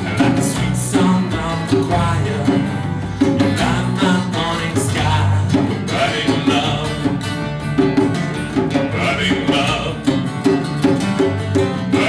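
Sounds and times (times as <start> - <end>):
man singing: 0.0 - 7.4, 8.9 - 10.4
djembe beat: 0.0 - 12.0
electric bass: 0.0 - 12.0
strummed acoustic guitars: 0.0 - 12.0.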